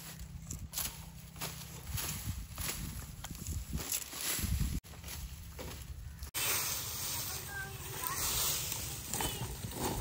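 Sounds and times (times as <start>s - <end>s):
dry stalks rustling and knocking: 0.0s - 10.0s
steady outdoor noise: 0.0s - 10.0s.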